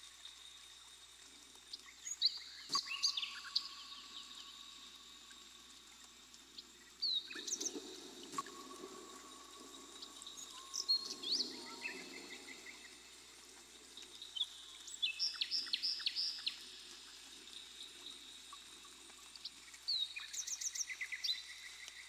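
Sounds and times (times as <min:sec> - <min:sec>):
faint high-pitched hum: 0:00.0 - 0:22.0.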